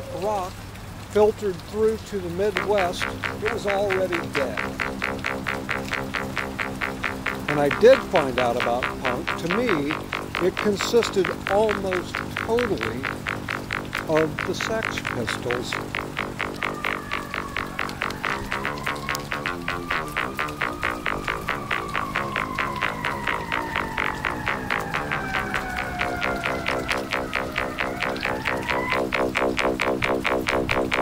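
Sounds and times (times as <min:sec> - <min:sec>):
synthesizer music with pulsing beat: 0:02.4 - 0:31.0
high gliding synth tone: 0:02.5 - 0:31.0.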